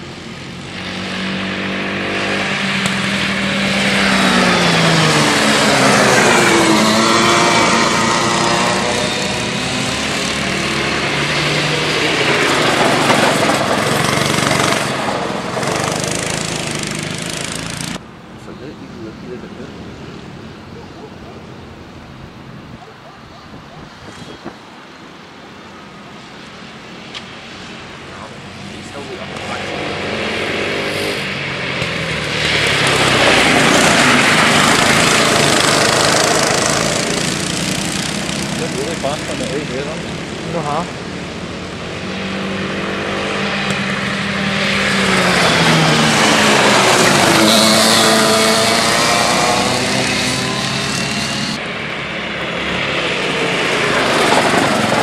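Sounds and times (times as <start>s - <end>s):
kart engine running: 0.0s - 18.0s, 27.2s - 55.0s.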